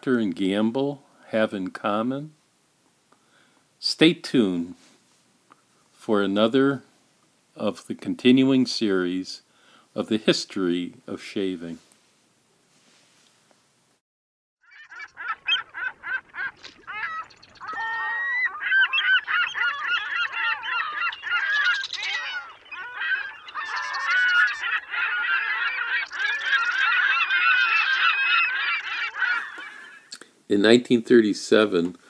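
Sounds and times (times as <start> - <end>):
flock of birds calling: 14.6 - 30.2.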